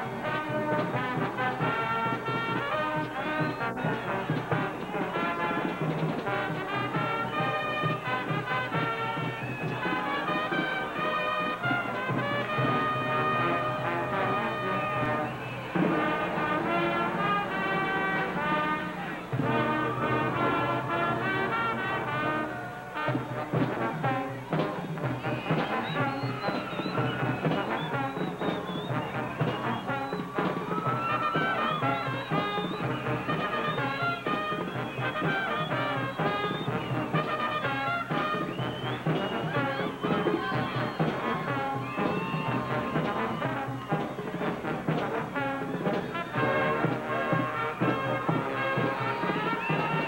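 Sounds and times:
brass band music: 0.0 - 50.0.

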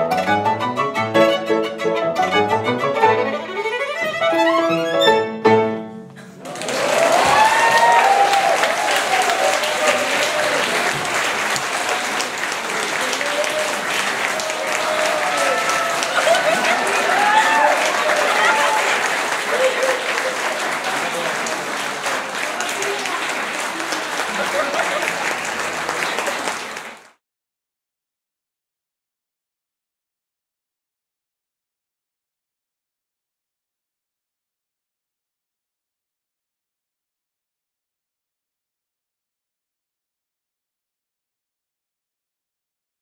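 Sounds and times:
audience clapping: 6.2 - 27.2
audience cheering and whooping: 6.4 - 21.0.

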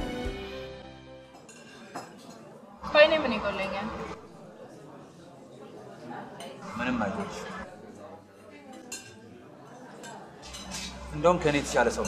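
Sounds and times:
cutlery clinking on plate: 1.3 - 2.6, 8.6 - 11.1.

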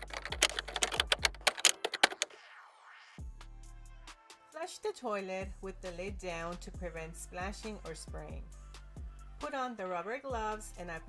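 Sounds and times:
background music with bass line: 0.0 - 1.6, 3.2 - 4.5, 5.4 - 9.6, 10.3 - 11.0
typewriter key clicks: 0.0 - 2.3.

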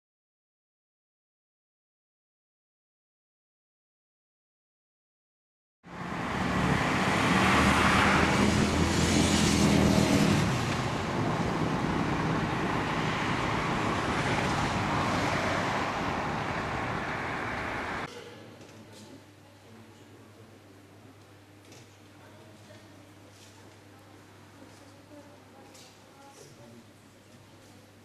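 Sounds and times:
vehicle engine running: 5.9 - 18.1
street noise: 5.9 - 18.3.

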